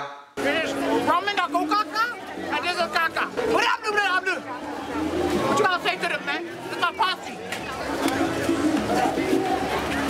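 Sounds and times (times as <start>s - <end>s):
babble of voices: 0.4s - 10.0s.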